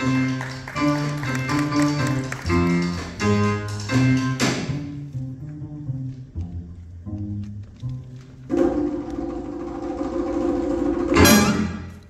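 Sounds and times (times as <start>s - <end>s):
big band horns holding a chord: 11.1s - 12.0s.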